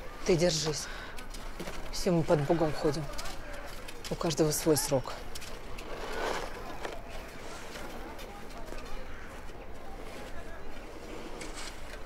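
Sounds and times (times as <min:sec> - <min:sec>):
faint background voices: 0:00.0 - 0:12.0
soft rustle: 0:00.0 - 0:12.0.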